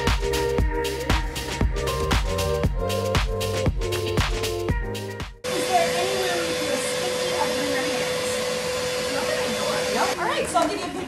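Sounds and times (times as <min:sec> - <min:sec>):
air blower hissing: 0:05.4 - 0:10.2.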